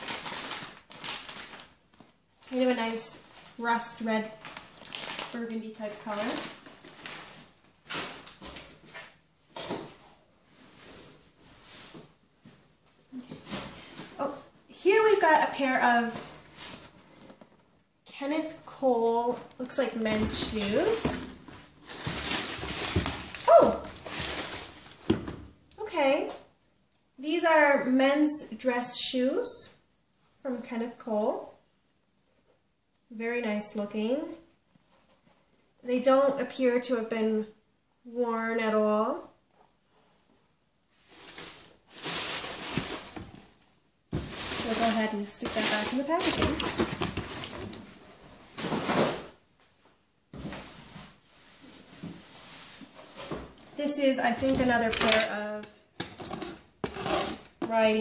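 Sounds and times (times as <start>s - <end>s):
paper packaging rustling: 0.0s - 9.9s, 19.3s - 25.3s, 41.0s - 49.3s.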